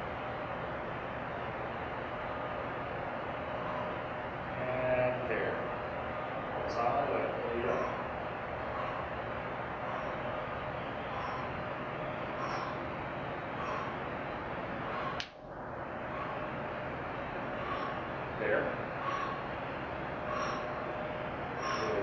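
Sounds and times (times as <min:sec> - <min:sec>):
man breathing hard: 0:01.5 - 0:22.0.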